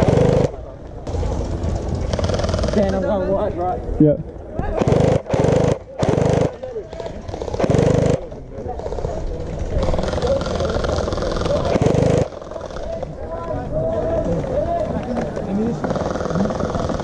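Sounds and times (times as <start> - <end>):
loud burst of noise: 0.0 - 3.0, 4.8 - 6.6, 7.3 - 8.3, 10.0 - 12.6
steady low rumble: 0.0 - 4.0.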